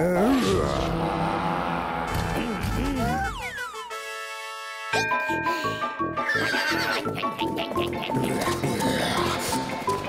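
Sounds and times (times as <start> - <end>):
lively cartoon music: 0.0 - 10.0.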